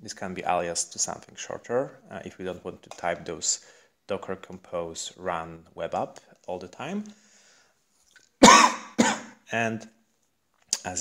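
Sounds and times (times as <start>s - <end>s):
person coughing: 8.4s - 9.4s.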